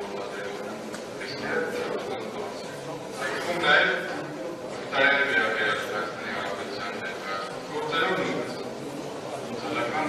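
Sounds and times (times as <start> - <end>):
man speaking into a microphone: 0.0 - 8.7.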